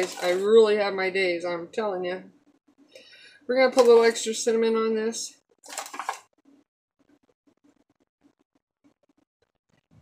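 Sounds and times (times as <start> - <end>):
foil pouch rustling: 0.0 - 0.5, 3.7 - 4.3, 5.6 - 6.3.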